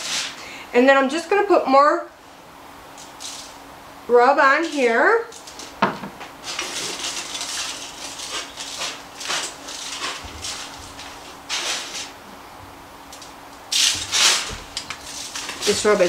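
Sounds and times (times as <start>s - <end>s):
aluminium foil crinkling: 4.6s - 5.8s, 6.4s - 12.2s, 13.2s - 16.0s.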